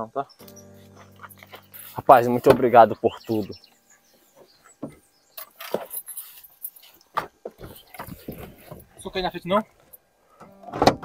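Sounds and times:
faint knocks and rustles: 4.2s - 10.5s.

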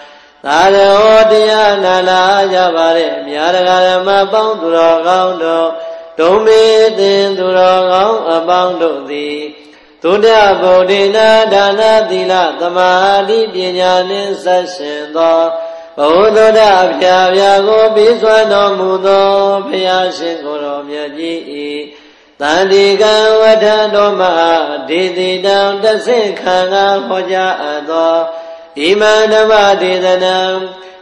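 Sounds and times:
person chanting melodically: 0.0s - 31.0s.

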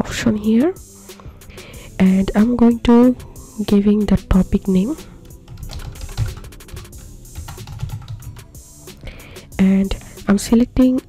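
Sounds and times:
background music: 0.0s - 11.0s
keyboard typing: 4.8s - 8.6s.

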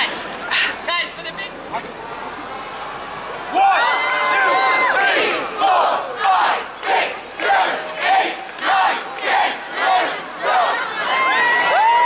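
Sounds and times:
crowd shouting together: 2.0s - 12.0s.

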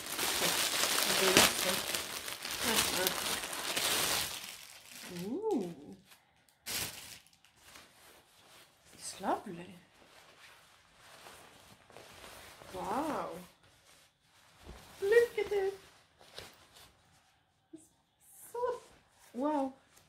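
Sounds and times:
packaging rustling and crinkling: 0.0s - 5.8s, 6.4s - 9.0s.

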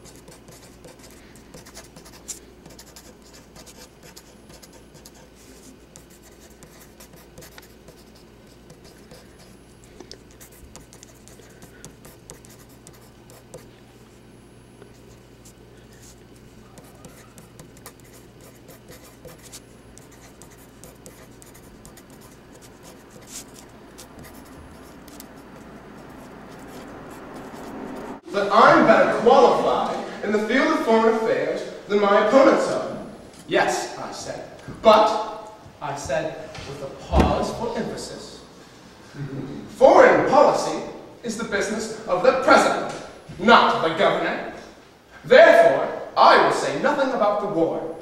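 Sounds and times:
pen scratching on paper: 0.0s - 9.6s, 10.2s - 13.7s, 15.0s - 28.2s.

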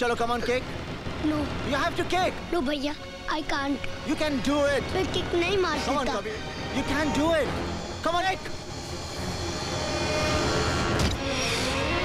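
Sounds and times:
sustained film score tone: 0.0s - 12.0s.

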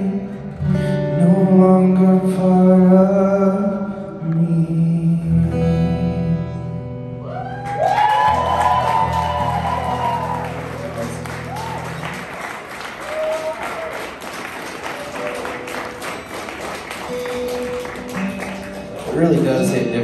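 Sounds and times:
audience clapping and cheering: 7.3s - 20.0s.

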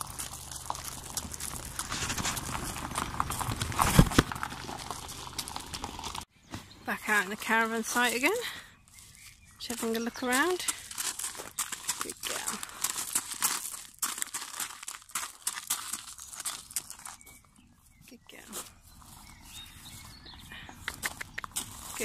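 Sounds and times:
footsteps crunching on gravel: 0.0s - 22.0s
horse hooves on gravel: 0.0s - 22.0s.

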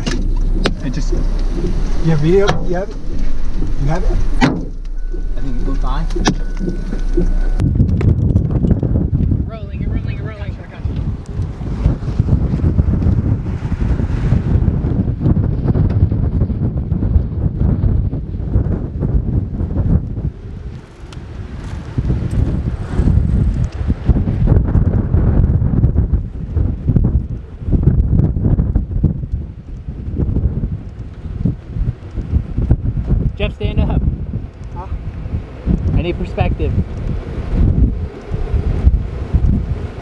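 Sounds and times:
gusty wind buffeting microphone: 0.0s - 40.0s.

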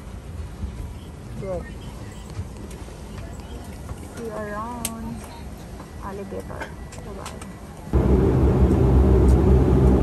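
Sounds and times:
airliner cabin hum: 0.1s - 10.0s.

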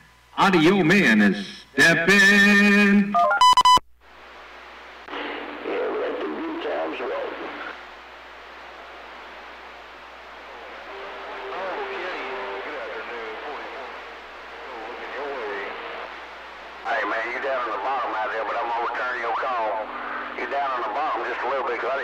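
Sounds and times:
radio static: 4.2s - 22.0s
distant voice over radio: 16.8s - 22.0s.

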